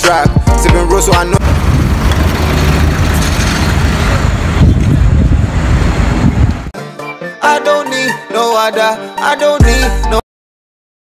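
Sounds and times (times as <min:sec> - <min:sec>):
wind buffeting microphone: 0:01.4 - 0:06.7.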